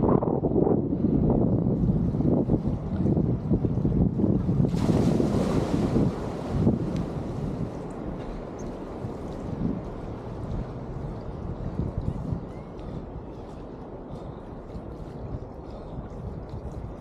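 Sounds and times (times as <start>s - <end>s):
wind buffeting camera microphone: 0.0s - 17.0s
water rushing: 2.7s - 15.0s.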